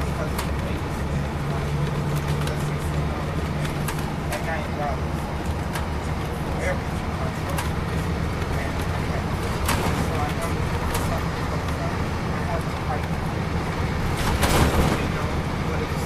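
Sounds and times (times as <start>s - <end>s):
diesel engine drone: 0.0s - 16.0s
road and tyre noise: 0.0s - 16.0s.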